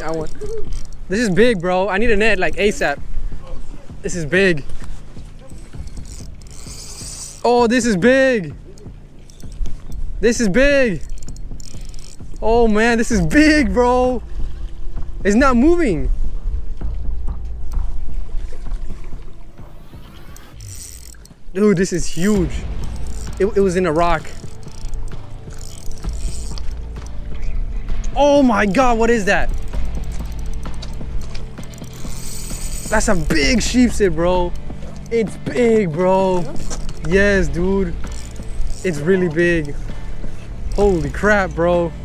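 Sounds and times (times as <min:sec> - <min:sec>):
fishing reel gears ticking: 0:00.0 - 0:02.9, 0:04.0 - 0:13.7, 0:19.7 - 0:27.2, 0:28.6 - 0:41.7
low wind rumble: 0:00.0 - 0:42.0.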